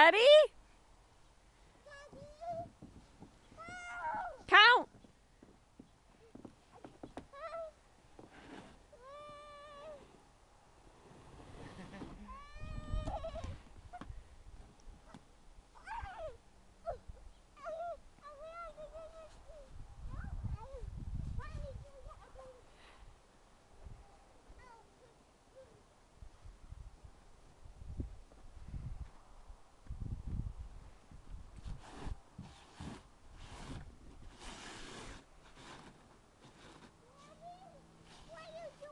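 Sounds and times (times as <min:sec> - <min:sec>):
small child squealing: 0:03.6 - 0:04.4, 0:12.3 - 0:13.6, 0:15.8 - 0:17.0
toddler squealing: 0:12.3 - 0:13.6.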